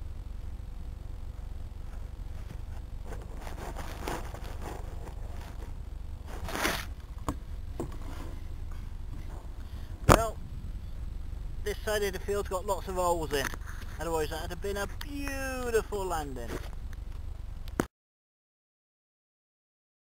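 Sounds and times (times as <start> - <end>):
grass and leaves rustling: 0.0 - 17.8
steady low hum: 0.0 - 17.9.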